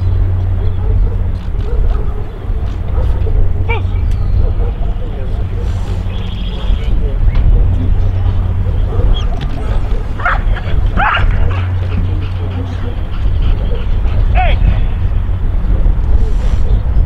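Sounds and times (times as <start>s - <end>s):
steady low rumble: 0.0s - 17.0s
dog barking: 0.5s - 6.1s, 8.6s - 14.2s.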